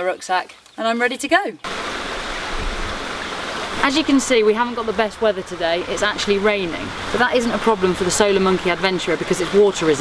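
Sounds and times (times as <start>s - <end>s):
rain falling on river: 1.6s - 10.0s.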